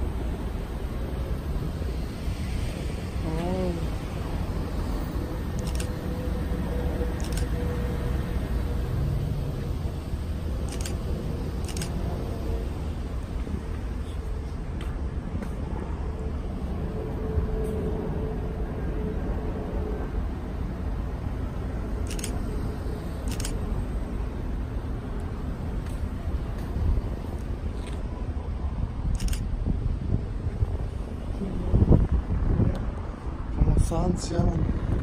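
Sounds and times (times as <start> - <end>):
distant traffic rumble: 0.0 - 35.0
wavering voice-like sound: 3.2 - 4.1
wind on microphone: 26.7 - 35.0.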